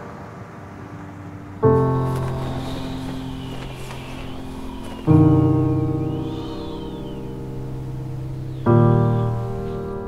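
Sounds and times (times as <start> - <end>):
steady rushing noise: 0.0 - 10.0
piano chord: 0.9 - 10.0.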